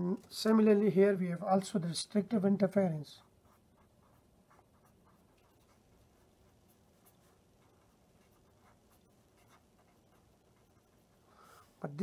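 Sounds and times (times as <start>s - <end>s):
pen writing on paper: 3.2s - 11.7s.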